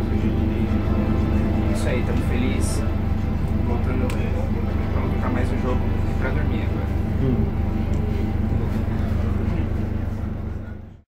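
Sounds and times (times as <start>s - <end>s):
bus engine rumble: 0.0s - 11.0s.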